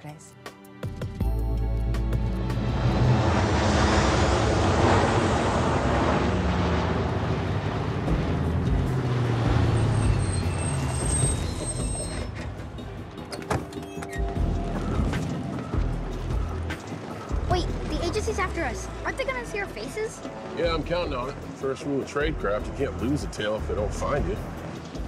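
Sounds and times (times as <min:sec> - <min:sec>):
film music score: 0:00.0 - 0:10.2, 0:11.2 - 0:25.0
street traffic vehicles passing: 0:01.5 - 0:25.0.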